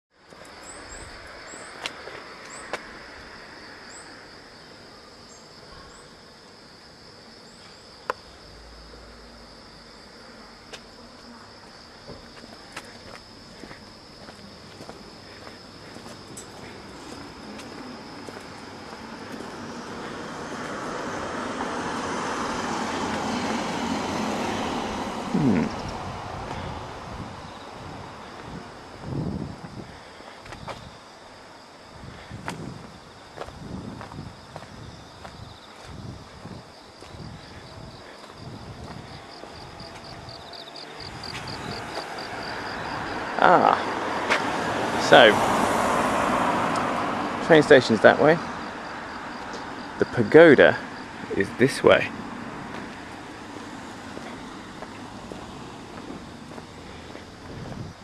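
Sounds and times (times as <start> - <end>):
high drone of insects: 0.1 - 58.0
motor vehicle passing: 13.7 - 30.1, 35.8 - 58.0.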